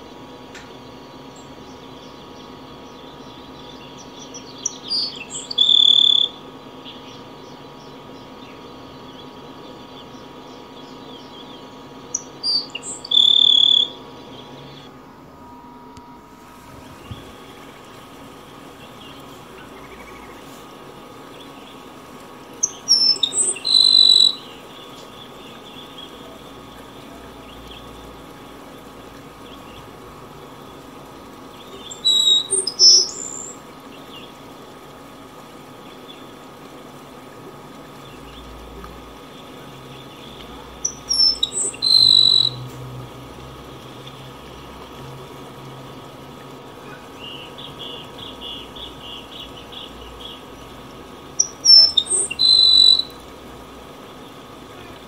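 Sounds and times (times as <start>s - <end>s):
low background hiss: 1.3s - 42.6s
sparrow singing high notes: 22.6s - 24.5s, 40.9s - 42.6s.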